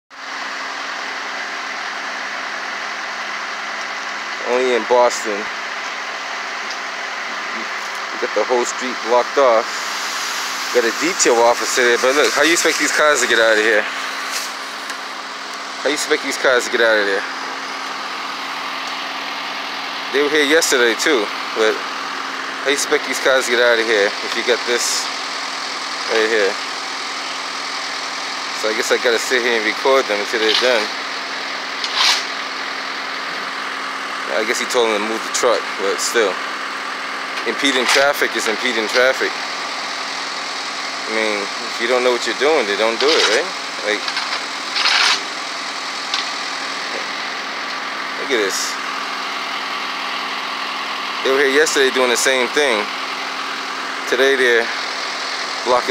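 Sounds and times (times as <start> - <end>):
diesel engine idling: 0.1 - 55.9
loud noisy hiss burst: 9.6 - 14.8.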